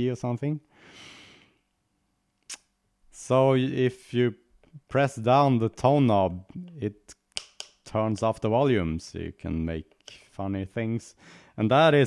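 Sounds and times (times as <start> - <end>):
man speaking: 0.0 - 0.7, 3.1 - 7.2, 7.8 - 12.0
man breathing out: 0.7 - 1.6.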